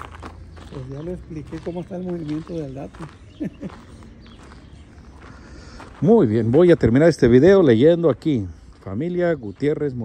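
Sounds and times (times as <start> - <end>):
footsteps on gravelly ground: 0.0 - 10.0.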